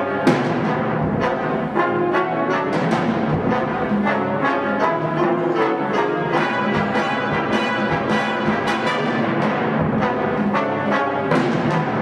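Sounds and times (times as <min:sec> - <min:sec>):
wind band with brass chords: 0:00.0 - 0:12.0.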